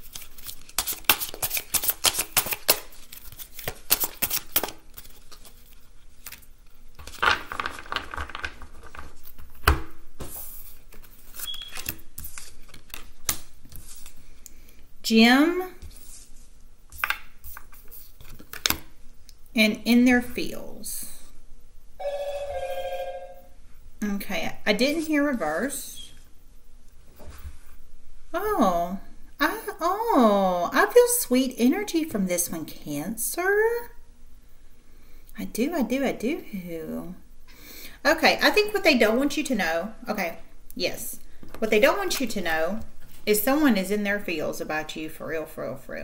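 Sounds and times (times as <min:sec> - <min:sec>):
cards being shuffled: 0:00.0 - 0:14.6, 0:15.8 - 0:18.8
warbling ringing tone: 0:22.0 - 0:23.6.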